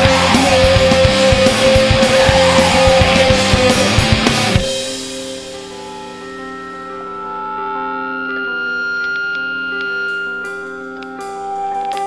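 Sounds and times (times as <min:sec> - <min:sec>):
sustained ringing guitar notes: 0:00.0 - 0:12.0
long high tone: 0:00.3 - 0:12.0.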